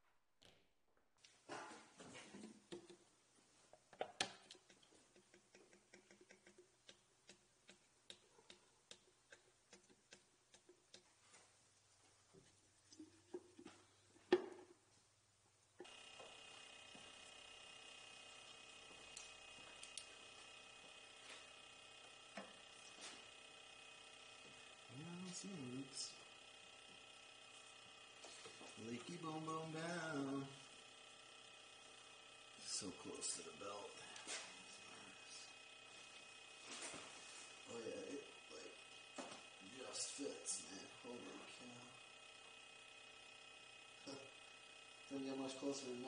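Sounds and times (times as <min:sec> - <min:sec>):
steady hum with held tones: 0:01.2 - 0:46.0
clicks and ticks of hand work: 0:02.3 - 0:03.0, 0:03.7 - 0:11.2.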